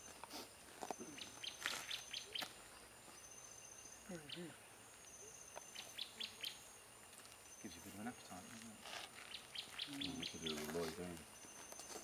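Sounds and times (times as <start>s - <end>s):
high insect whine: 0.0s - 12.0s
bird calling with sharp high notes: 0.8s - 6.7s, 9.2s - 10.8s.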